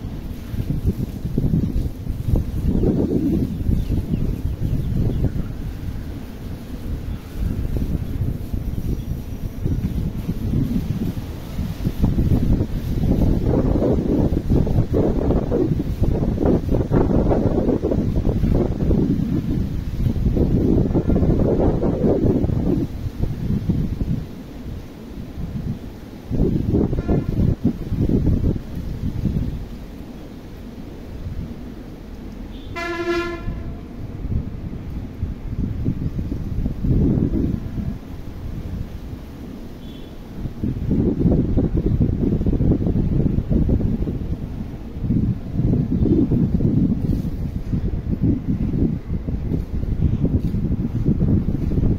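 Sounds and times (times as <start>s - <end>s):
wind buffeting microphone: 0.0s - 51.9s
short horn toot: 26.9s - 27.5s, 32.5s - 33.9s, 39.8s - 40.2s.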